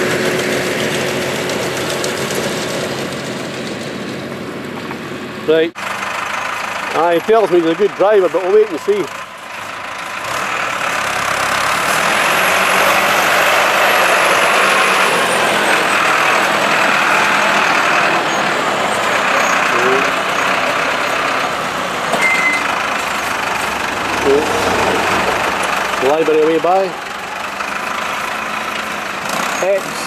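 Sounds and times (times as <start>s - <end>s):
tractor diesel engine running: 0.0s - 30.0s.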